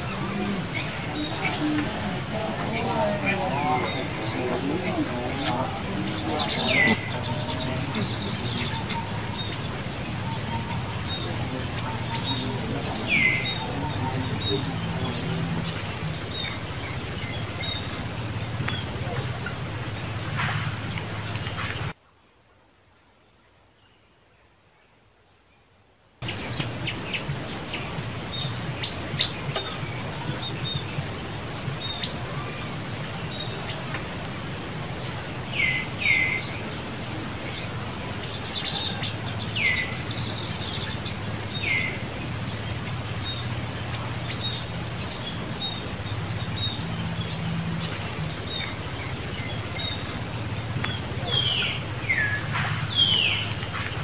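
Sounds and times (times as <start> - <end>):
birds chirping: 0.0 - 22.0, 25.5 - 54.0
background hiss: 0.0 - 54.0.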